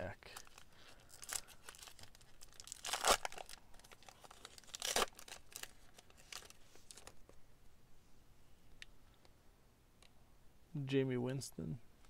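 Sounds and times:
wrapper crinkling: 0.3 - 7.3
foil pack tearing: 0.4 - 5.7.

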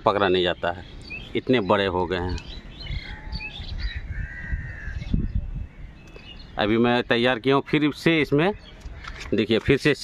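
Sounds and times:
birds chirping: 0.0 - 10.0.

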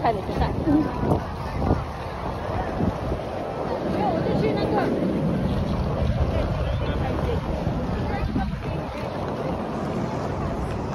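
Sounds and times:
faint voices of passers-by: 0.0 - 10.9
wind buffeting microphone: 0.0 - 10.9.

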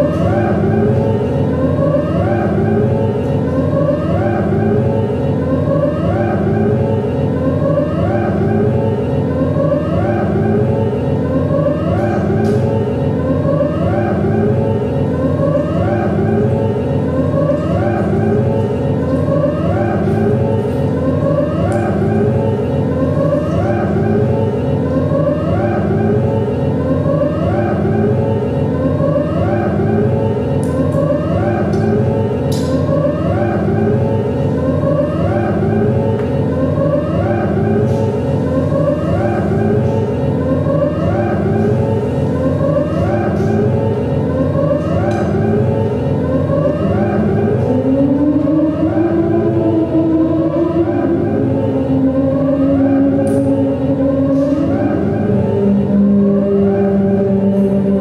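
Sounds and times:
electronic drone: 0.0 - 58.0
rising siren-like glide: 0.0 - 58.0.

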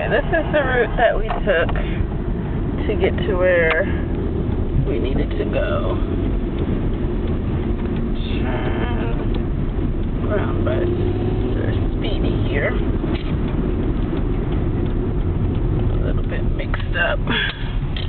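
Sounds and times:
car road and engine rumble: 0.0 - 18.0.

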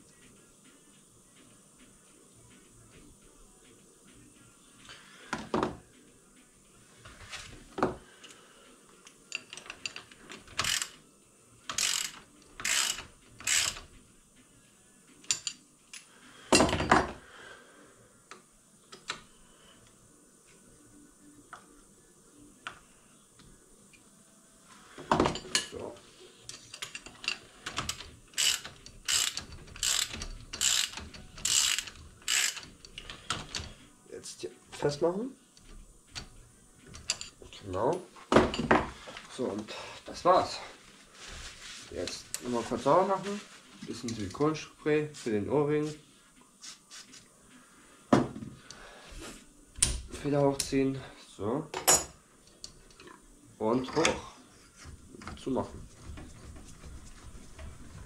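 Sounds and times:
ratchet wrench clicking: 9.3 - 11.0, 11.7 - 13.9, 26.6 - 33.7.

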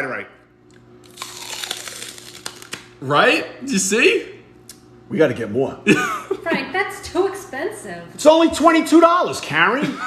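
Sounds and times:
crunching and crackling bite: 0.7 - 3.0.

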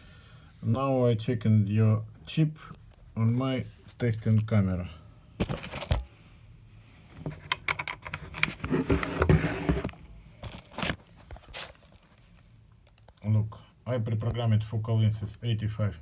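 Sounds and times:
plastic packaging rustling: 9.1 - 12.4.

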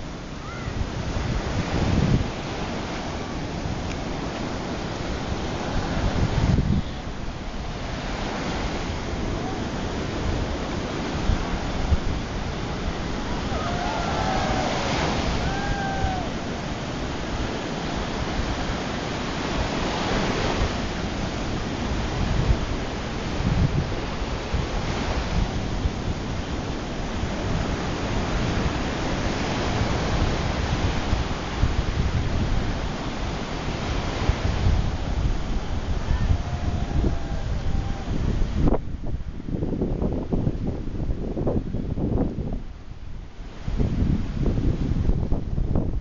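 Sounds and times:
surf breaking on beach: 0.0 - 42.6
wind buffeting microphone: 0.0 - 46.0.

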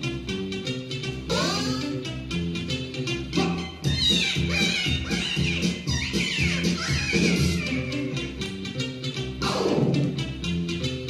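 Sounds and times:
bass and mid-range accompaniment: 0.0 - 11.0.

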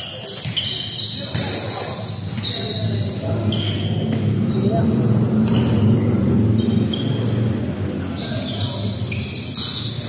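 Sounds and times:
shoe squeaks: 0.0 - 7.5, 8.1 - 10.0
players' voices: 0.0 - 10.0.

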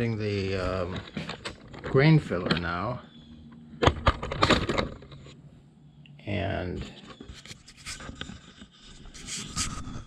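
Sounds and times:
clicks and knocks of objects handled: 0.5 - 2.8.

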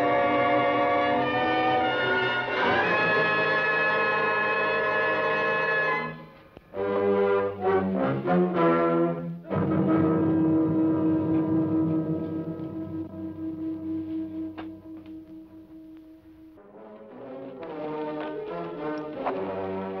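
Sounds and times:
orchestral brass music: 0.0 - 20.0.

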